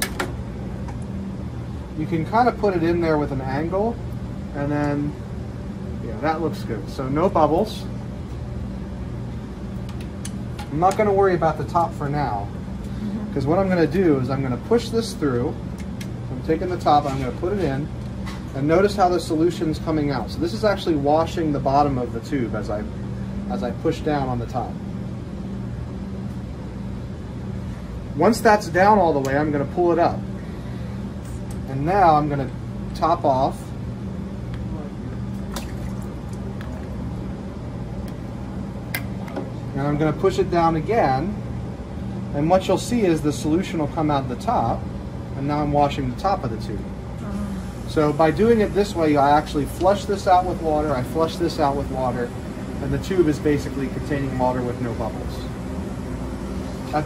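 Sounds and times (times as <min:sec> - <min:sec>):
low machine hum: 0:00.0 - 0:57.0
water dripping and squishing: 0:35.4 - 0:36.9.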